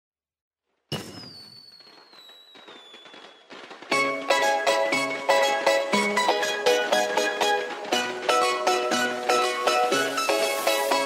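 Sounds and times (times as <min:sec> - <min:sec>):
firework burst and falling whistle: 0:00.9 - 0:03.8.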